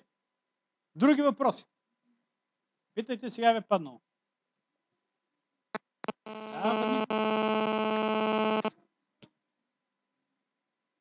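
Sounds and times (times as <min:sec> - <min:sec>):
buzzy electronic tone: 0:06.0 - 0:08.7.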